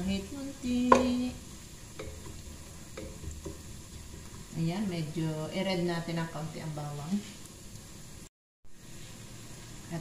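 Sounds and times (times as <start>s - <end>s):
garlic sizzling in oil: 0.0s - 10.0s
wooden spatula knocking pot: 0.8s - 1.3s, 1.9s - 4.3s.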